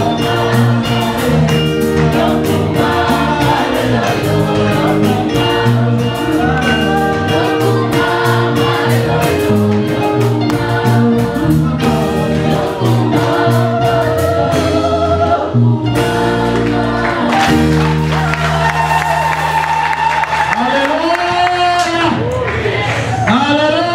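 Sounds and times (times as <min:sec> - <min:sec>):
women's gospel choir singing: 0:00.0 - 0:20.5
steady drum beat: 0:00.0 - 0:21.1
church band held chords: 0:00.0 - 0:22.2.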